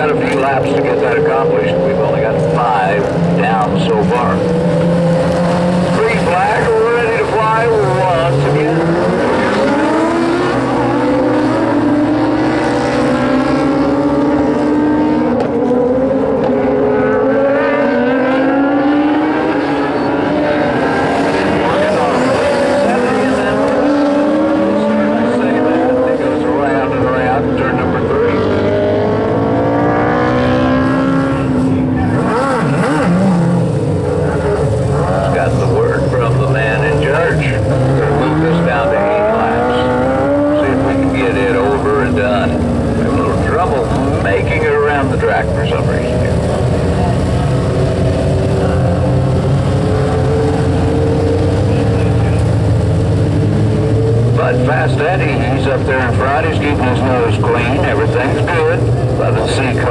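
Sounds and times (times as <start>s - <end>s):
small race car engines racing: 0.0s - 59.9s.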